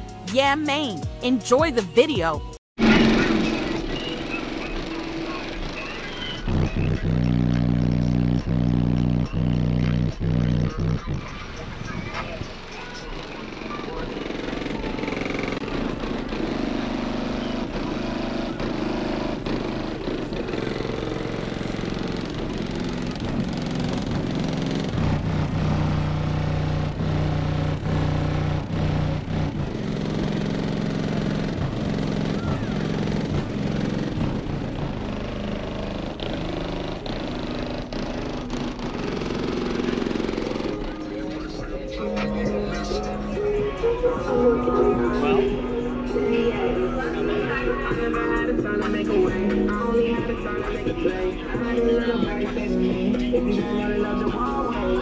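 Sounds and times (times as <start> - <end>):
indistinct voices: 0.3 - 23.4, 31.4 - 35.0, 36.1 - 55.0.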